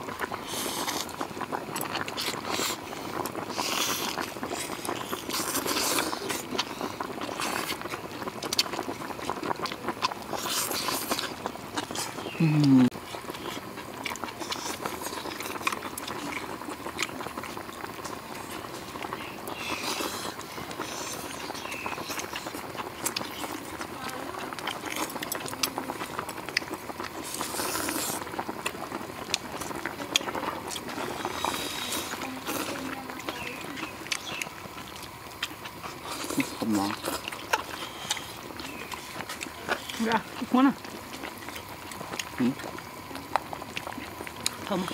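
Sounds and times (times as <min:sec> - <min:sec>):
chewing: 0:00.0 - 0:44.9
outdoor background noise: 0:00.0 - 0:44.9
slurping soup: 0:00.0 - 0:44.9.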